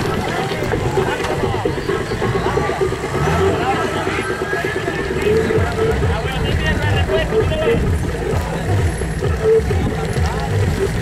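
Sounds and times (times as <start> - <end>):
car engine running at low revs: 0.0 - 11.0
onlookers talking: 0.0 - 11.0.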